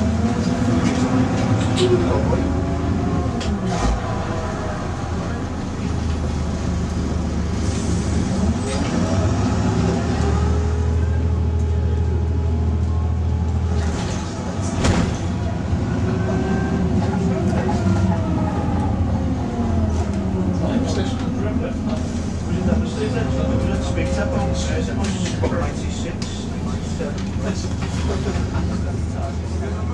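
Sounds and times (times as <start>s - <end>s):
bus diesel engine droning: 0.0s - 29.9s.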